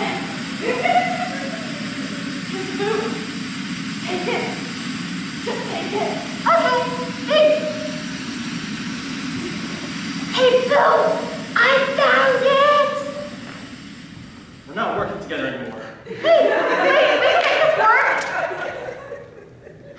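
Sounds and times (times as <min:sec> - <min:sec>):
steady background hiss: 0:00.0 - 0:19.9.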